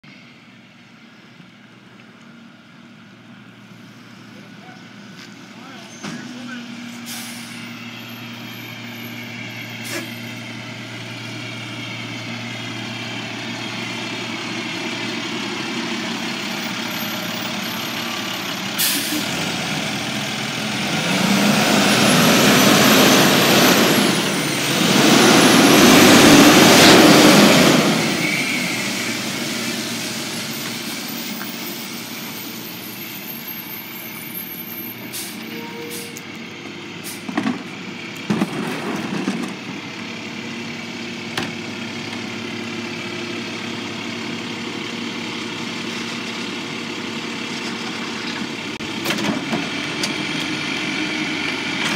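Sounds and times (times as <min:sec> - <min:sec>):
truck diesel engine humming: 0:00.1 - 0:51.9.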